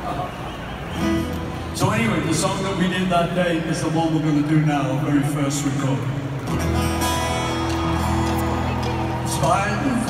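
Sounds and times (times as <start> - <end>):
amplified acoustic guitar chords: 5.5 - 10.0.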